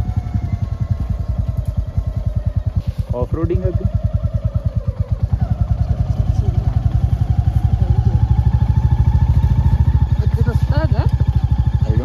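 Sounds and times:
motorcycle engine thumping: 0.0 - 12.0.

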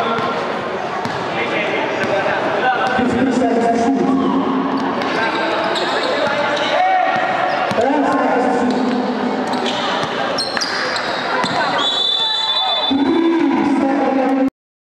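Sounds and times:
basketball bouncing: 1.0 - 1.3, 7.1 - 10.7, 11.4 - 11.7
short high squeaks: 9.5 - 11.6.

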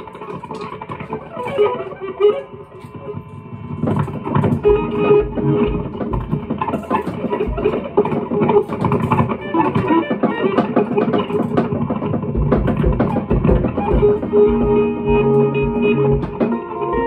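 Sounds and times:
electric guitar notes: 0.0 - 17.0
scattered drum hits: 3.8 - 17.0
low drum thumps: 4.6 - 7.9, 12.3 - 17.0.

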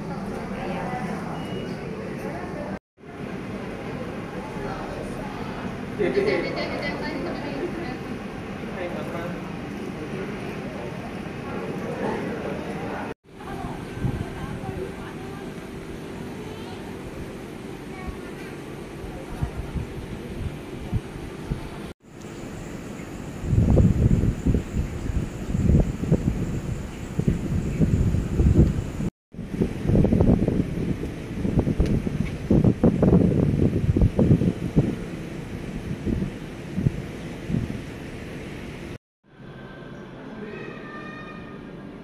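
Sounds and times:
wind buffeting microphone: 13.5 - 15.2, 19.0 - 21.9, 22.8 - 38.8.

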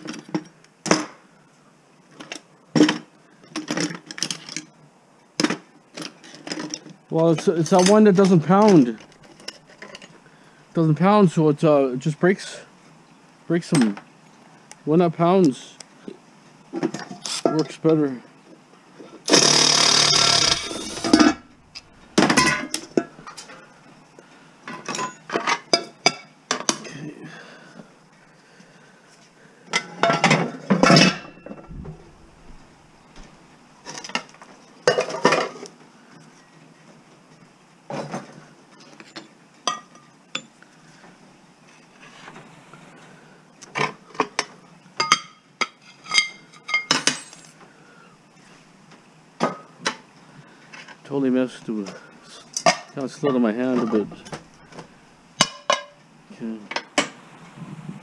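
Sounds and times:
cordless driver whirring: 19.3 - 21.4
metal pans and tools clanking: 21.0 - 23.6, 29.8 - 32.1.

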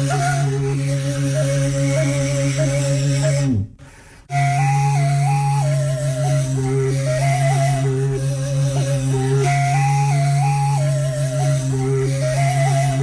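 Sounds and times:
end-blown flute melody over drone: 0.0 - 3.5, 4.3 - 13.0.

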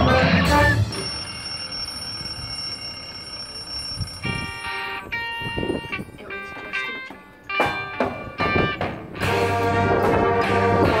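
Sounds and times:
high held tone: 0.0 - 10.0
soft bell-like chords: 0.4 - 8.4.

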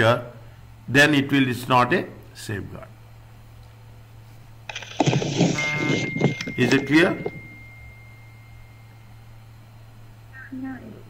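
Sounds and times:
steady high tone: 4.7 - 9.6
low hum: 4.7 - 11.0.

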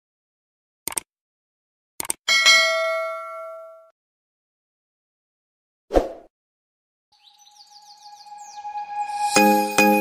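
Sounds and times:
quick clicks: 0.9 - 1.1, 2.0 - 2.2
bell ding: 2.3 - 3.9.

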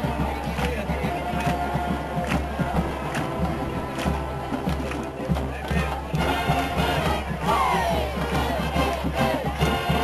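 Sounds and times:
marching band playing: 0.0 - 10.0
steady drum beat: 0.0 - 10.0
voices shouting: 5.7 - 10.0.

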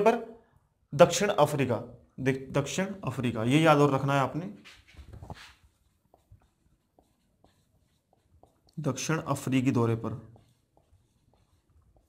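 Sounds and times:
marker pen writing on whiteboard: 2.7 - 12.0.

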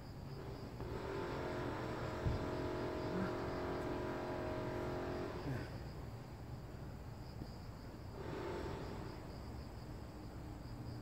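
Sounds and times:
pulsing insect buzz: 0.0 - 6.0, 8.0 - 11.0
vehicle engine humming: 0.0 - 6.8.

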